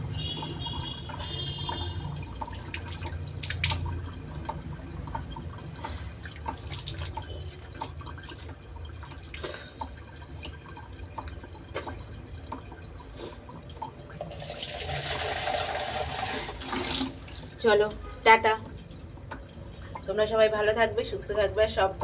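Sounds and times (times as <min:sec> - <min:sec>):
water splashing: 0:00.0 - 0:17.6
water dripping: 0:00.0 - 0:22.0.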